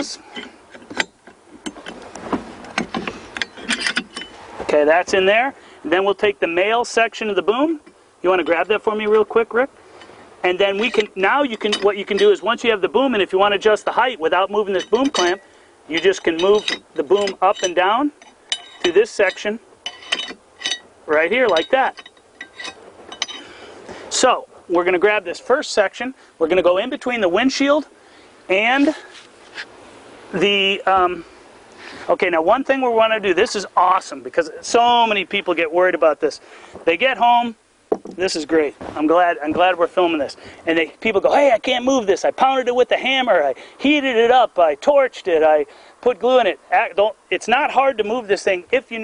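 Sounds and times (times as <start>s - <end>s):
metal tapping on metal: 2.7s - 4.4s, 10.8s - 12.4s, 14.7s - 15.4s, 16.0s - 20.9s, 21.5s - 23.5s
metal clicks and clinks: 2.8s - 4.4s, 14.7s - 15.4s, 16.0s - 20.9s, 21.5s - 23.5s.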